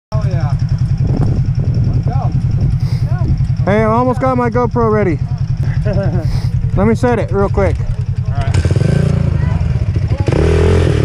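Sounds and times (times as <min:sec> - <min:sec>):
voices: 0:00.1 - 0:10.7
atv engine idling: 0:00.1 - 0:11.0
man talking loudly: 0:03.1 - 0:05.2.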